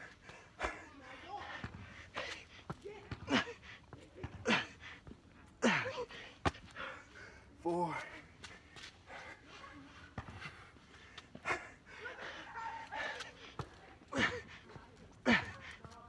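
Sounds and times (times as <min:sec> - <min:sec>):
hands and feet tapping ground: 0:00.0 - 0:16.0
man breathing heavily: 0:00.0 - 0:16.0.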